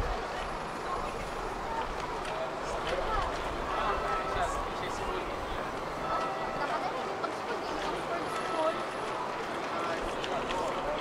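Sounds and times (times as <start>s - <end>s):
faint voices of passers-by: 0.0s - 11.0s
road traffic rumble: 0.0s - 11.0s.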